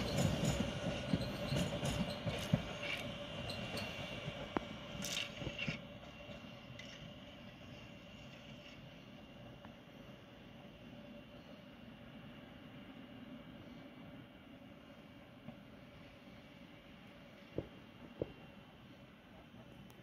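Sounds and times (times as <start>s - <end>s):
train wheel and rail noise: 0.0s - 20.0s.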